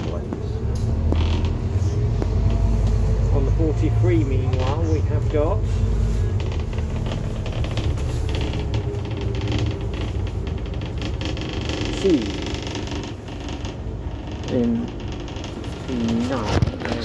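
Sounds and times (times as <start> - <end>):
bus diesel engine running: 0.0 - 17.0
bodywork rattles: 4.4 - 17.0.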